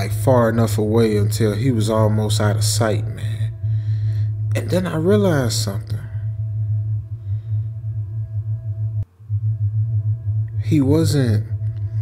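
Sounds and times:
dark ambient drone music: 0.0 - 12.0.

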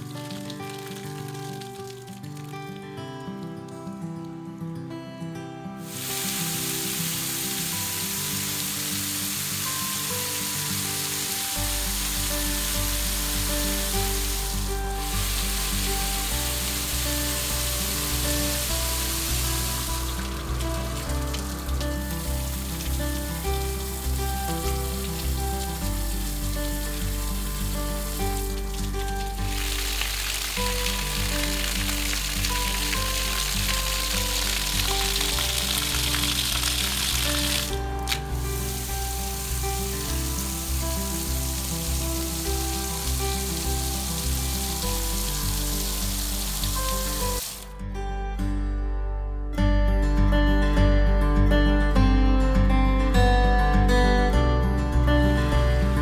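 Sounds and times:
shower water pouring on stone: 0.0 - 3.8, 5.8 - 47.7
background music with bass: 10.1 - 56.0.

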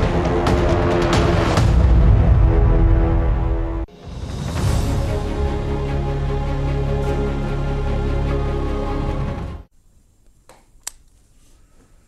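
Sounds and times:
theme music with heavy bass: 0.0 - 9.7.

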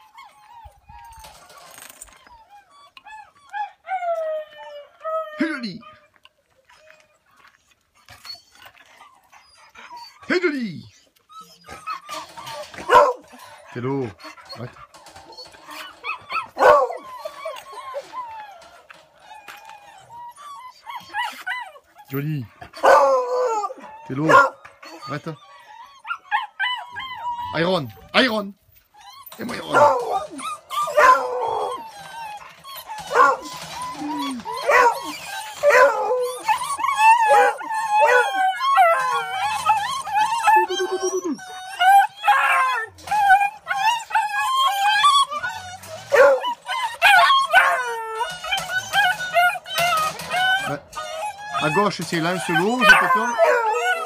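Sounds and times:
dogs whining and yipping: 0.0 - 54.0
hounds howling and yelping: 0.0 - 54.0
dog baying: 29.4 - 39.2, 46.1 - 54.0.

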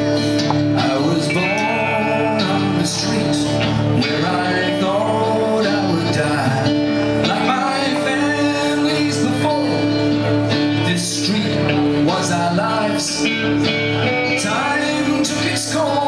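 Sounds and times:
man singing: 0.0 - 16.0
rock band playing: 0.0 - 16.0.

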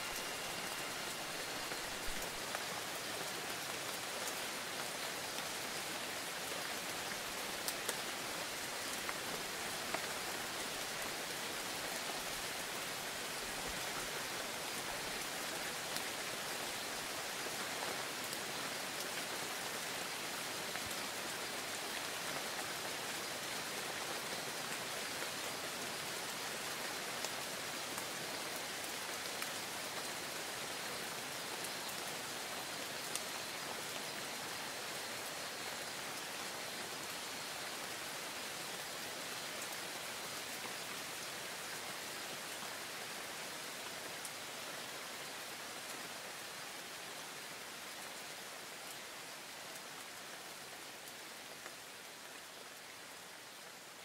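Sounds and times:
steady rain hiss: 0.0 - 54.0.

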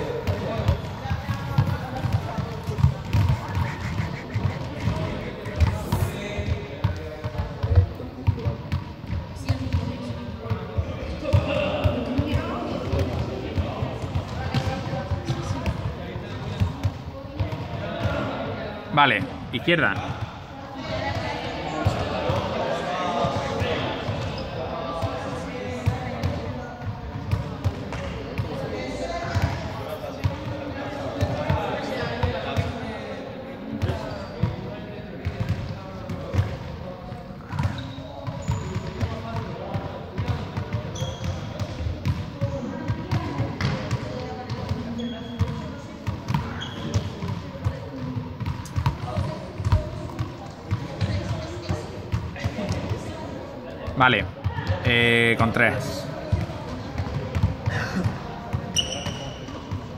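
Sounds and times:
balls bouncing on hall floor: 0.0 - 32.8, 33.7 - 53.2, 53.8 - 59.9
people's voices echoing: 0.0 - 40.4, 47.3 - 59.9.

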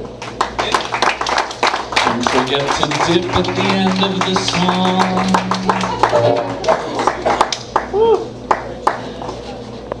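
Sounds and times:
scattered hand claps: 0.2 - 9.1.

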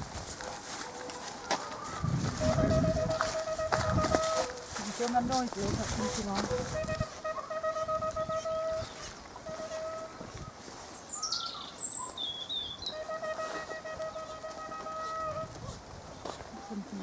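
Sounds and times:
bird calling: 1.0 - 4.8, 5.9 - 17.0
hunting horn long notes: 2.4 - 4.6, 6.0 - 10.2, 12.9 - 15.6.

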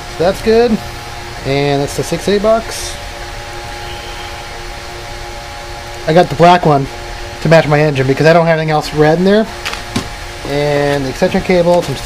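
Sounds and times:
server cooling fans whirring: 0.0 - 12.0.

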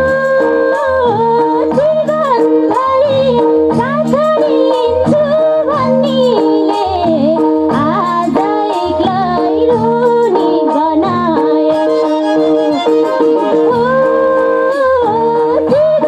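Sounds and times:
harmonium chords: 0.0 - 16.0
low rhythmic accompaniment: 0.0 - 16.0
woman singing into microphone: 0.0 - 16.0.

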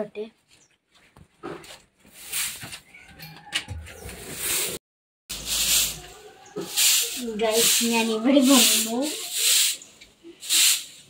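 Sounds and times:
broom swishing on concrete: 2.0 - 3.0, 4.0 - 11.0.

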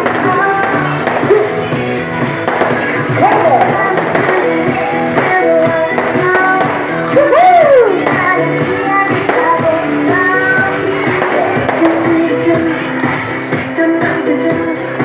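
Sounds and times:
woman singing into microphone: 0.0 - 1.6, 3.2 - 12.9, 13.6 - 15.0
loud backing track: 0.0 - 15.0.

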